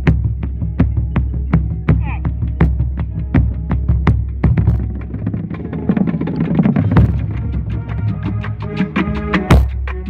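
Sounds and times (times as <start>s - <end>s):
marching bass drum strikes: 0.0s - 8.3s
snare drums playing: 0.0s - 10.0s.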